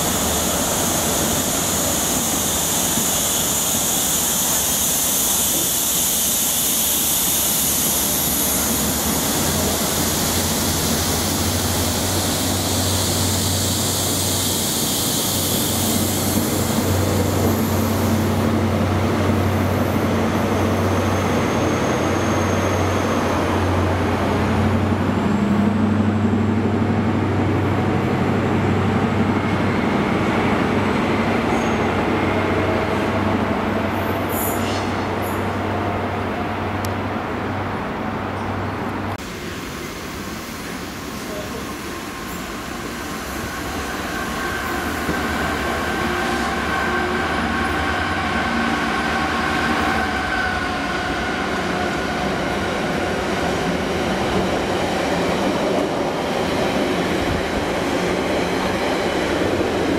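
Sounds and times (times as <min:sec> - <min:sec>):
train wheels hissing on rail: 0:00.0 - 0:35.8, 0:39.1 - 0:59.9
steady low train drone: 0:00.0 - 0:59.9.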